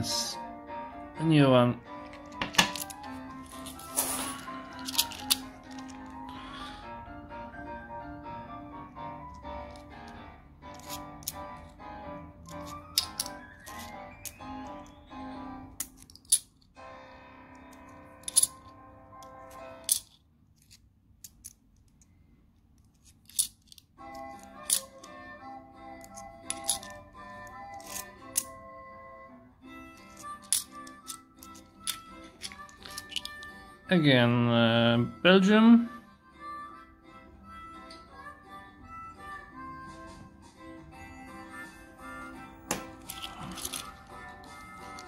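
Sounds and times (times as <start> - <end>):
background music: 0.0 - 20.2, 23.9 - 45.0
coins clinking: 2.0 - 6.2, 9.3 - 11.7, 12.4 - 15.0, 15.8 - 16.7, 17.7 - 21.6, 22.8 - 25.3, 25.9 - 28.6, 29.9 - 33.7, 42.6 - 45.0
coins clicking on wooden table: 2.1 - 3.0, 10.7 - 11.6, 12.5 - 14.4, 18.2 - 18.6, 26.0 - 27.0.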